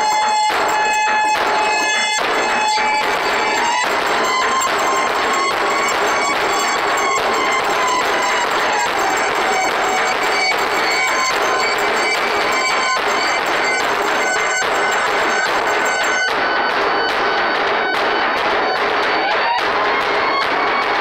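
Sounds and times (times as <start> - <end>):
sustained high tones: 0.0 - 16.6
distorted electronic noise music: 0.0 - 21.0.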